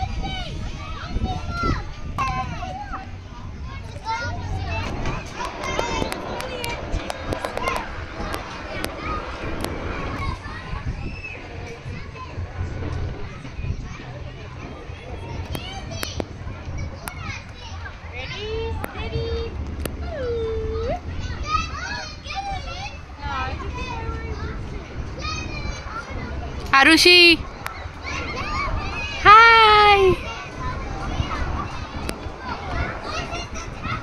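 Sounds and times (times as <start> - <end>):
children calling and shouting: 0.0 - 34.0
child's long drawn-out call: 29.2 - 30.2.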